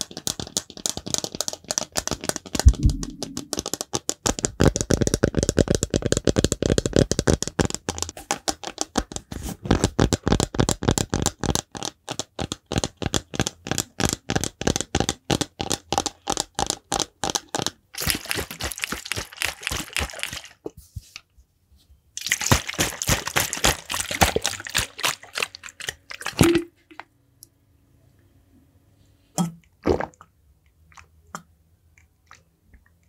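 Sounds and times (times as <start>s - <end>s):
fingers tapping plastic bottle: 0.0s - 20.7s, 22.2s - 26.7s.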